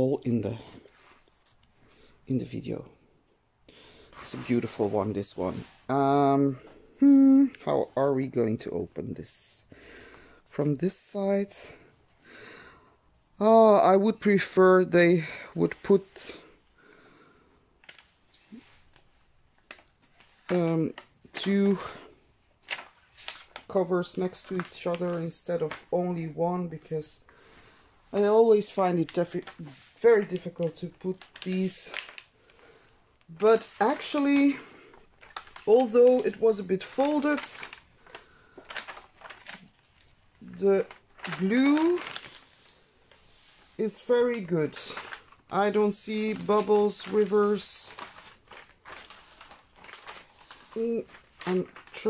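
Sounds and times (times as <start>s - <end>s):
plastic sheet rustling: 0.0s - 2.7s, 3.7s - 9.6s, 13.4s - 16.6s, 17.7s - 52.0s.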